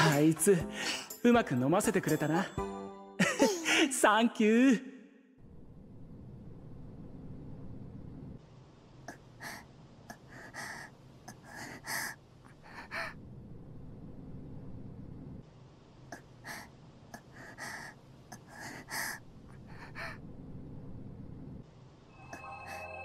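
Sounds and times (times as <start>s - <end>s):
girl gasping and panting: 0.7s - 1.1s, 3.4s - 3.9s, 16.4s - 20.1s.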